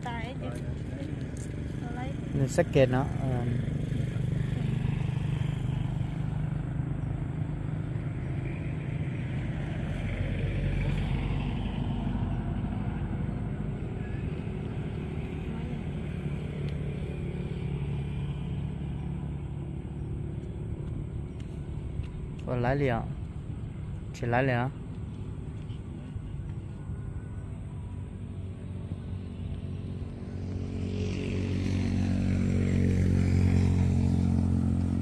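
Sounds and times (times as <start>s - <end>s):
low motor rumble: 0.0s - 35.0s.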